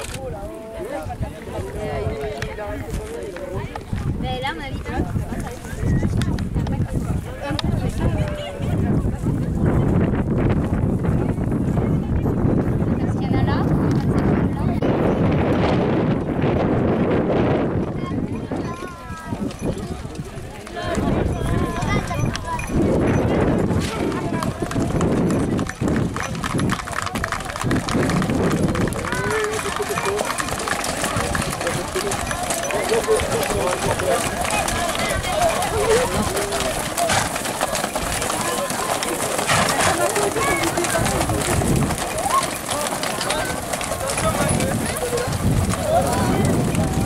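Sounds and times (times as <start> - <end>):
crowd voices: 0.0 - 47.0
hoofbeats on dry ground: 19.2 - 47.0.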